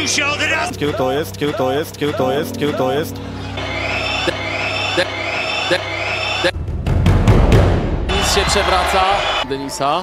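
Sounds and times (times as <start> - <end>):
looping music snippet with chanting: 0.0 - 7.0
deep bass boom: 6.5 - 8.4.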